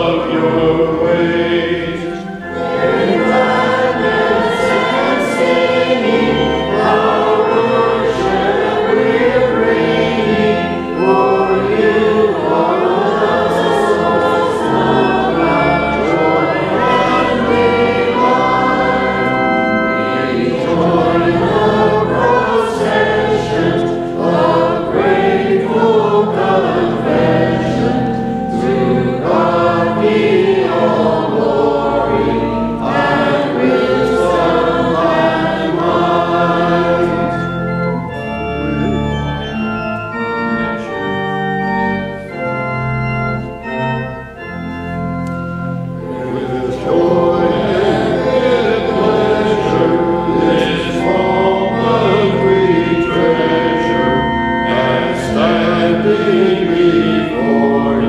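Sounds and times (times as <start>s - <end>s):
choir singing sacred music: 0.0s - 58.0s.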